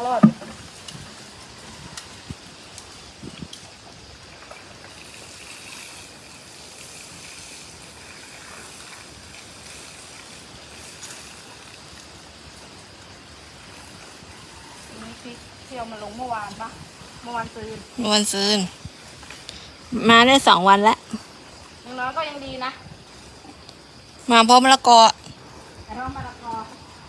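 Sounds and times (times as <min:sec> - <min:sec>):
water pouring onto soil: 0:00.0 - 0:14.5.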